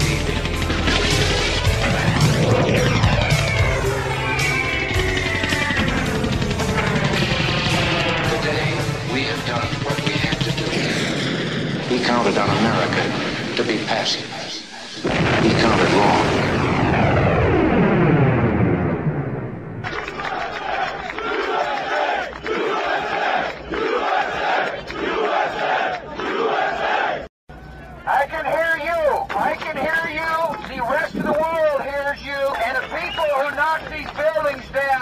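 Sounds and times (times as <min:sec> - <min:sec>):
aircraft engine noise: 0:00.0 - 0:15.0
crowd chanting and shouting: 0:19.9 - 0:27.3.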